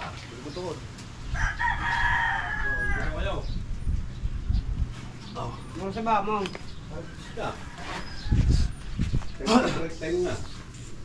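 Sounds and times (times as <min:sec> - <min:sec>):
rooster crowing: 0:01.3 - 0:03.2, 0:07.0 - 0:09.0.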